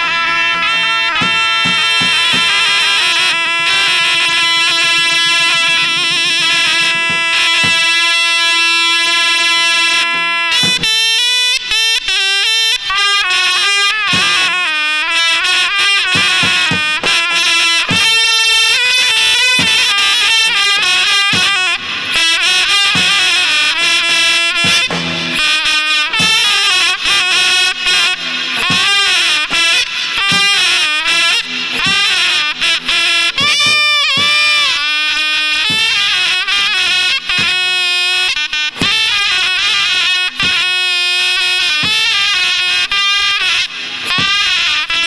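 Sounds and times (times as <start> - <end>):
shrill reed pipe melody: 0.0 - 45.0
large drum beats: 0.6 - 2.6, 5.8 - 8.0, 10.6 - 10.9, 14.1 - 14.5, 16.0 - 18.3, 19.6 - 21.8, 22.6 - 23.6, 24.5 - 27.0, 28.5 - 29.6, 31.8 - 34.8, 37.3 - 37.6, 40.4 - 40.7
deep drum beats: 5.9 - 7.9, 16.2 - 18.2, 21.3 - 21.7, 22.9 - 23.4, 24.6 - 25.5, 33.4 - 34.7, 37.4 - 37.6.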